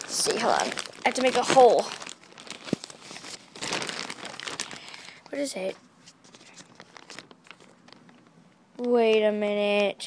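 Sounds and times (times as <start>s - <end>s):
package crinkling and tearing: 0.0s - 9.0s.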